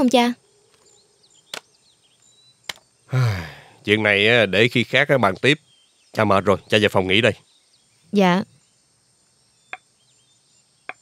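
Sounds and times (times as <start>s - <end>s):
faint chirping: 0.0s - 11.0s.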